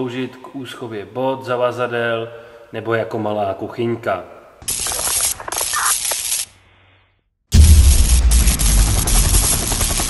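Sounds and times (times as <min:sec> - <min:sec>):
logo sound effect rumble and rattling: 0:07.5 - 0:10.0.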